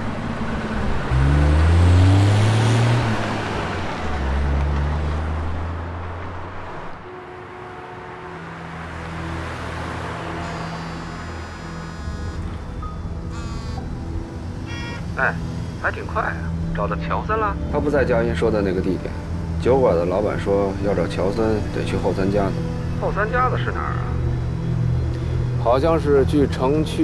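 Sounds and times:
minivan engine revving: 0:00.0 - 0:07.0, 0:08.0 - 0:27.0
soft street traffic: 0:00.0 - 0:27.0
music: 0:07.0 - 0:27.0.

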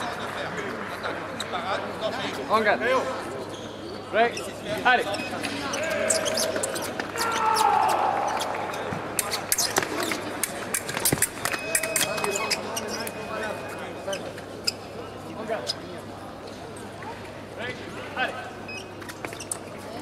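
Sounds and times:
voices in large hall: 0:00.0 - 0:20.0.

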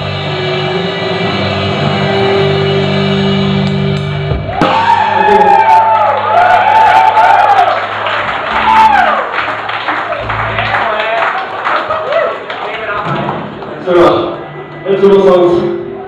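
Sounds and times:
crowd shouting and whooping: 0:04.4 - 0:13.4.

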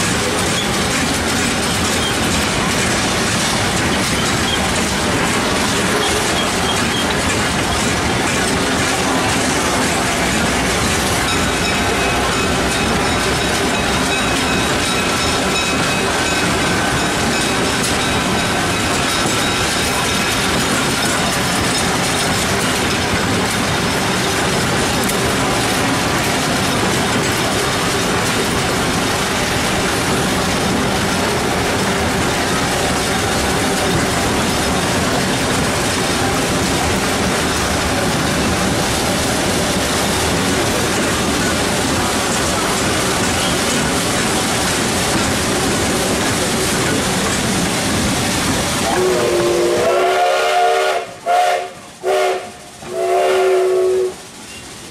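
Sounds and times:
steam whistle blasts: 0:48.8 - 0:54.2.

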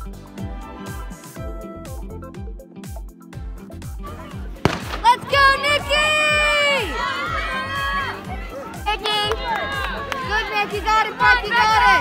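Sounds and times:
background music with beat: 0:00.0 - 0:12.0
spectators cheering: 0:04.3 - 0:12.0
starter pistol crack: 0:04.6 - 0:05.1.

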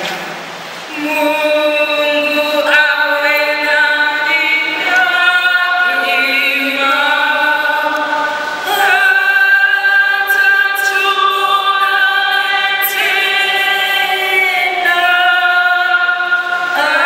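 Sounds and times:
choir singing long notes: 0:00.9 - 0:17.0.

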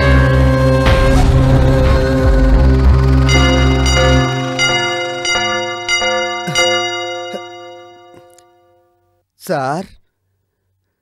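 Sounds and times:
low bass: 0:00.0 - 0:06.7
bell-like chimes: 0:03.2 - 0:09.0.

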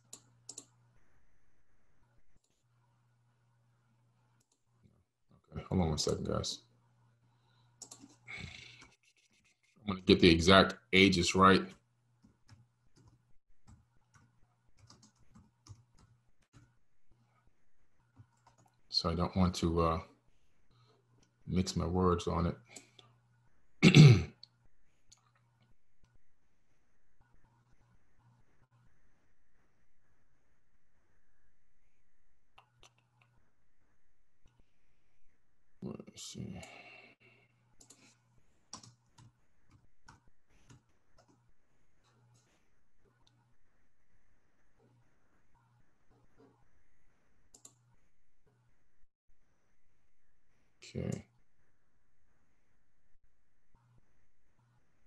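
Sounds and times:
computer mouse clicks: 0:00.0 - 0:00.8, 0:07.8 - 0:09.4, 0:11.7 - 0:16.7, 0:18.1 - 0:18.8, 0:32.5 - 0:33.4, 0:37.8 - 0:41.4, 0:47.5 - 0:47.9
man clearing throat: 0:23.8 - 0:24.4.

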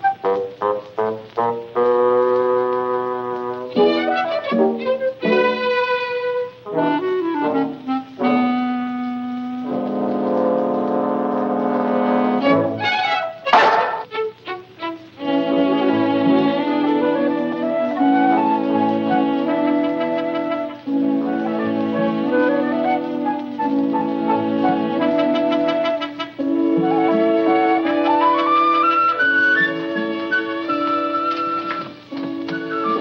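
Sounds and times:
orchestral music with brass: 0:00.0 - 0:33.0.

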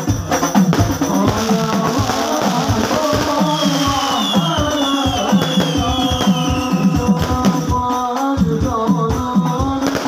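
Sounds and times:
frame drums and percussion: 0:00.0 - 0:10.0.

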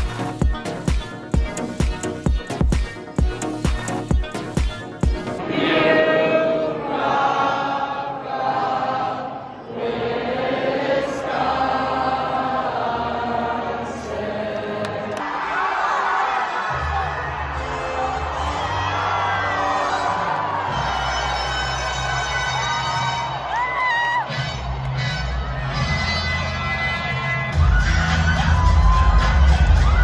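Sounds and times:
loud music with heavy bass: 0:00.0 - 0:05.4, 0:24.3 - 0:30.0
stadium crowd cheering and singing: 0:00.0 - 0:30.0.

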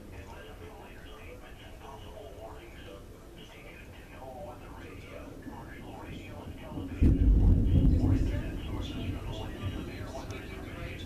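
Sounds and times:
thunder rumble: 0:04.4 - 0:11.0.

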